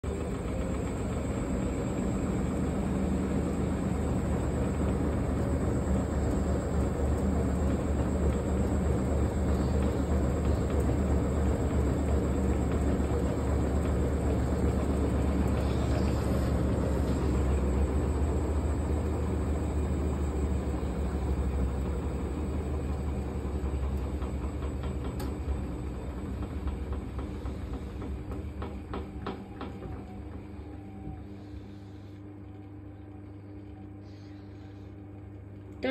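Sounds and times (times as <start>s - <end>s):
washing machine drum spinning: 0.0s - 34.1s.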